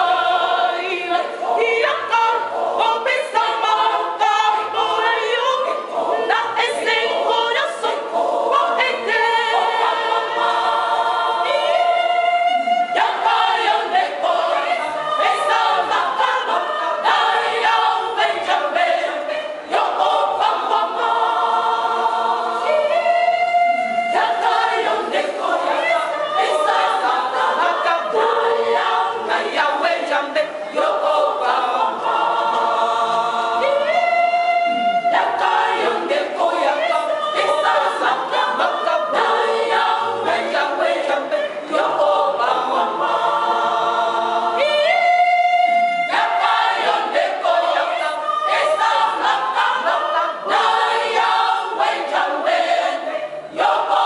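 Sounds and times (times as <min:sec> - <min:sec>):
women's choir singing: 0:00.0 - 0:54.0.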